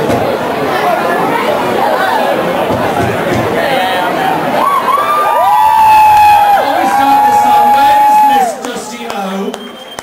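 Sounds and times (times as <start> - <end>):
crowd noise: 0.0 - 10.0
person whooping: 4.6 - 8.6.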